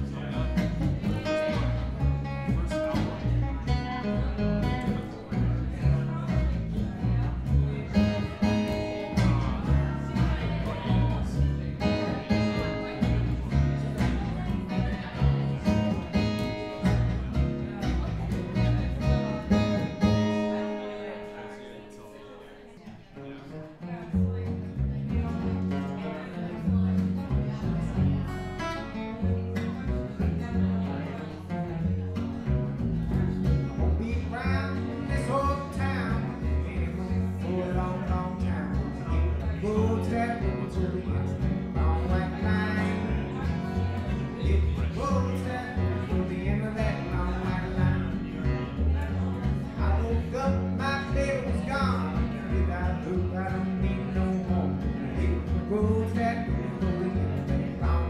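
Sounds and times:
strong bass: 0:00.0 - 0:20.7, 0:26.6 - 0:58.0.

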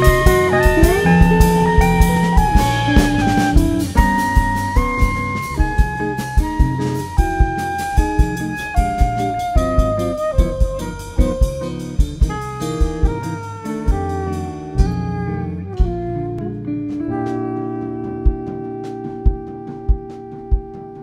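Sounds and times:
drum kit: 0:00.0 - 0:21.0
guitar accompaniment: 0:00.0 - 0:21.0
soprano saxophone solo: 0:00.0 - 0:21.0.

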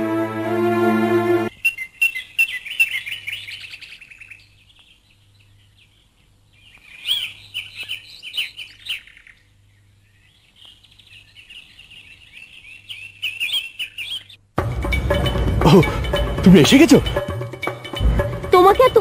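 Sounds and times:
small birds chirping: 0:01.5 - 0:14.5.

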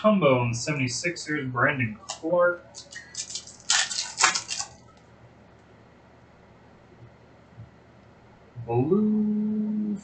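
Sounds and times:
foil wrapper tearing: 0:02.1 - 0:05.0.

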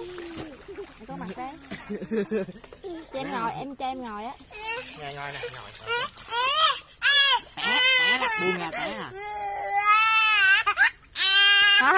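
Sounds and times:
young child wailing: 0:06.3 - 0:11.9.

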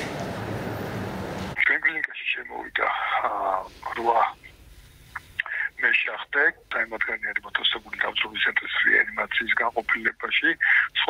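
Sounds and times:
man speaking over telephone: 0:01.6 - 0:04.5, 0:05.4 - 0:11.0.

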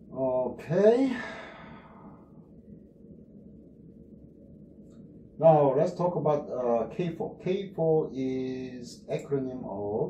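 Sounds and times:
man sighing: 0:01.0 - 0:02.0.

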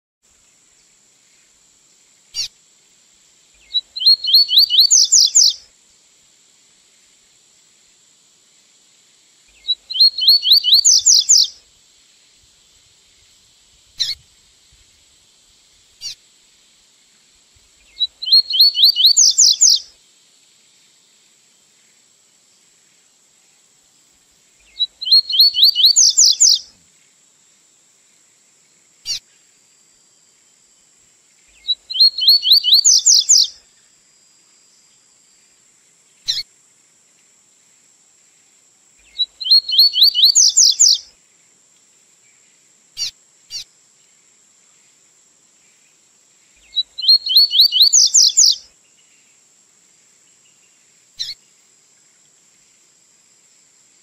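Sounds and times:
faint steady high whine: 0:00.2 - 0:54.0
bird singing high rising notes: 0:03.6 - 0:05.6, 0:09.6 - 0:11.5, 0:18.0 - 0:19.8, 0:24.8 - 0:26.6, 0:31.7 - 0:33.5, 0:39.2 - 0:41.0, 0:46.7 - 0:48.6.

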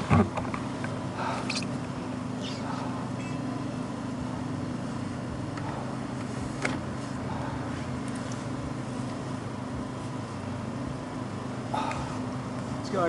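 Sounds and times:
engine idling: 0:00.0 - 0:13.0.

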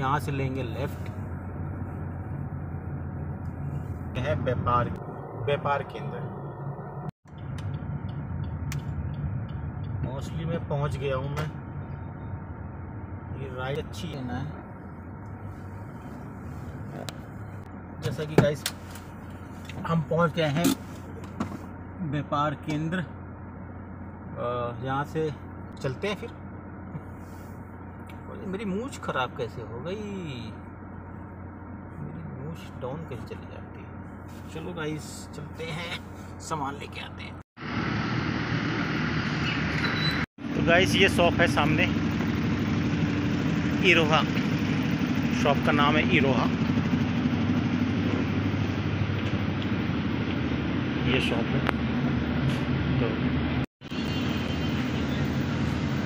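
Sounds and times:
car engine idling: 0:00.0 - 0:39.8, 0:40.4 - 0:56.0
low mechanical rumble: 0:00.0 - 0:56.0
man speaking: 0:04.1 - 0:06.4.

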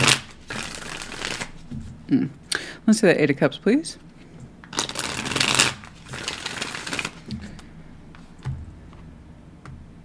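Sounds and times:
cards being shuffled: 0:00.0 - 0:01.7, 0:04.6 - 0:08.5.

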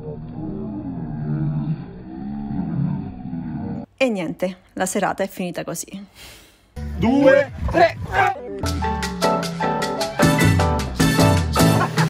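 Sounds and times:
slowed men shouting and whooping: 0:07.0 - 0:08.8.

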